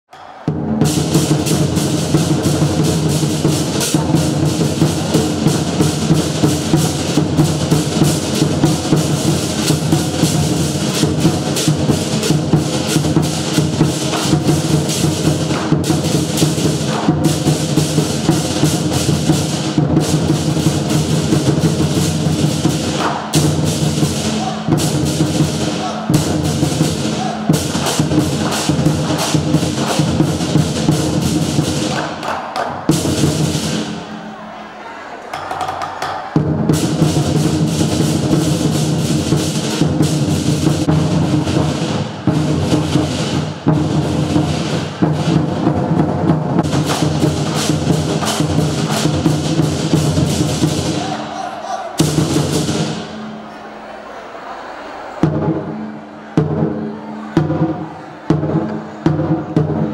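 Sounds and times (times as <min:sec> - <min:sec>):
drum beaten with sticks: 0:00.1 - 0:34.6, 0:35.3 - 0:53.5, 0:55.2 - 0:59.9.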